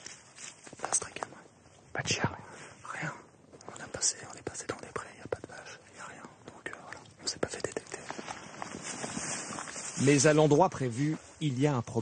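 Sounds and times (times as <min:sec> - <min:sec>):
rustling of dry leaves: 0:00.0 - 0:01.1, 0:07.7 - 0:11.8
men whispering: 0:00.7 - 0:08.7.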